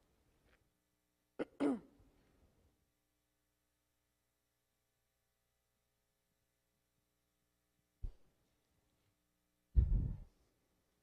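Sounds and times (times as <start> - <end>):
person clearing throat: 1.4 - 2.0.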